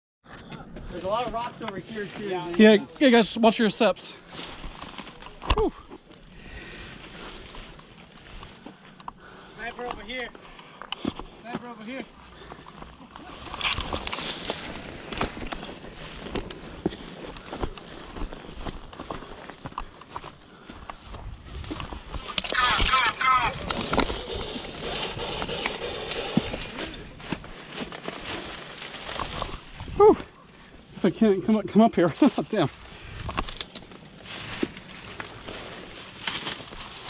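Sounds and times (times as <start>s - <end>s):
dry grass rustling: 0.9s - 37.0s.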